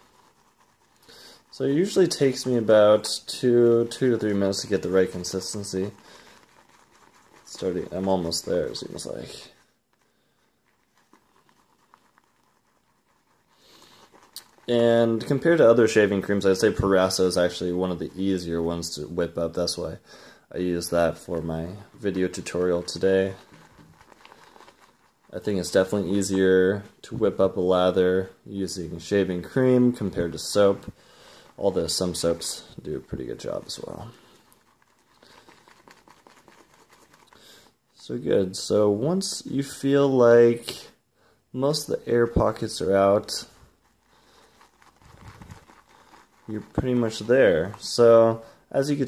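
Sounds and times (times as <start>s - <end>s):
shaving brush whisking lather: 0.0s - 40.3s, 41.6s - 49.0s.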